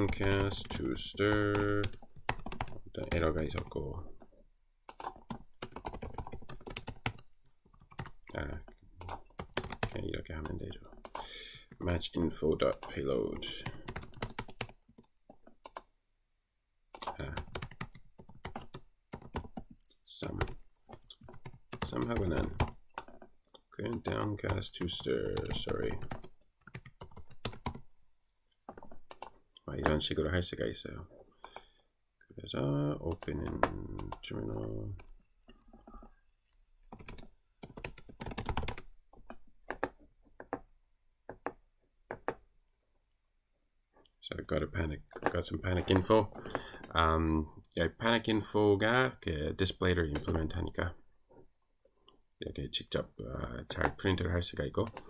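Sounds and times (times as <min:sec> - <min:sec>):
typing on computer keyboard: 0:00.0 - 0:03.7, 0:04.9 - 0:11.3, 0:13.6 - 0:15.9, 0:16.9 - 0:23.3, 0:23.9 - 0:27.8, 0:28.8 - 0:30.0, 0:36.8 - 0:40.6.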